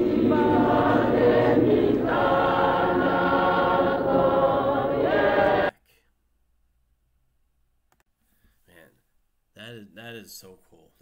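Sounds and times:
choir singing long held notes: 0.0s - 5.7s.

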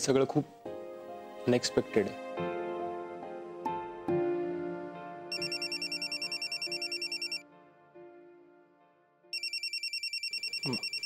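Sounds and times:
phone trilling ringtone: 5.3s - 7.4s, 9.3s - 11.0s.

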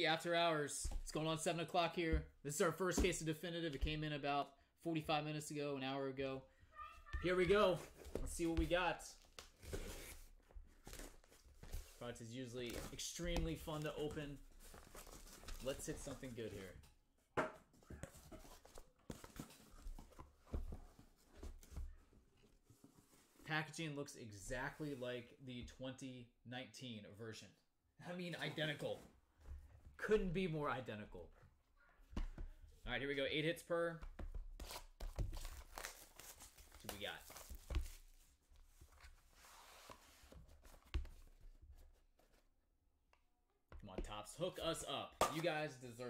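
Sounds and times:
cardboard boxes rustling and scraping: 9.6s - 12.1s, 12.8s - 16.3s, 17.8s - 22.0s, 37.4s - 42.4s.

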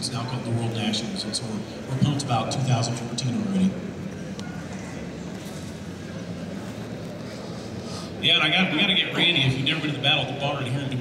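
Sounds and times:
indoor hall hum and hiss: 0.0s - 11.0s.

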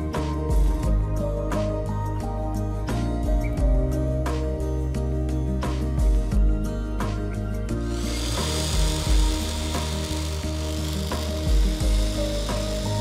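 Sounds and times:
background music with a beat: 0.0s - 13.0s
electric hand blender running: 7.9s - 13.0s.

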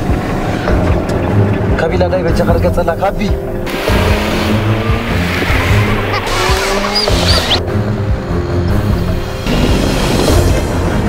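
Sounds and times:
background music: 0.0s - 11.0s
car engine and tyre noise: 0.0s - 11.0s.

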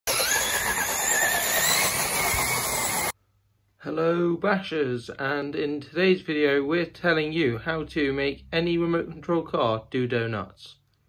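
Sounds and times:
remote-control car motor whining: 0.1s - 3.2s.

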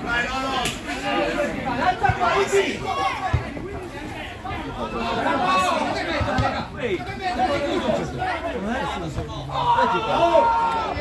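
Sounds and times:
people talking and calling out: 0.0s - 11.0s
people shouting: 9.4s - 11.0s.

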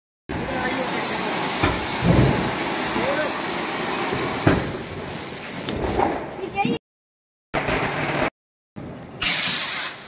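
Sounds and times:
firework fountain hissing: 0.3s - 5.7s, 9.2s - 10.0s
firework cracks: 9.2s - 10.0s.

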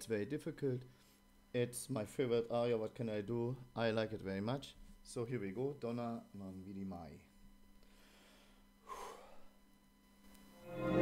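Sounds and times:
man taking sharp breath: 7.8s - 9.5s.

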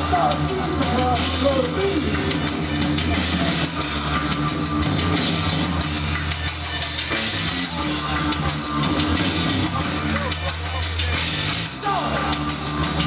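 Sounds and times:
bass guitar: 0.0s - 13.0s
guitar: 0.0s - 13.0s.

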